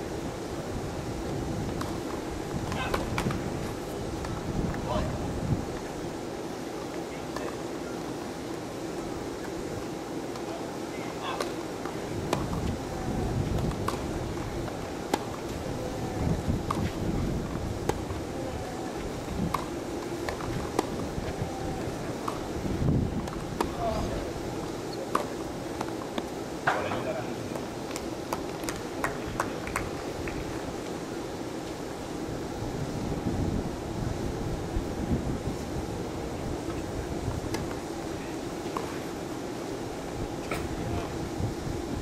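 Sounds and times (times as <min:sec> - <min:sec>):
wind gusts on microphone: 0:00.0 - 0:06.2, 0:12.0 - 0:24.5, 0:32.2 - 0:38.3, 0:40.1 - 0:42.0.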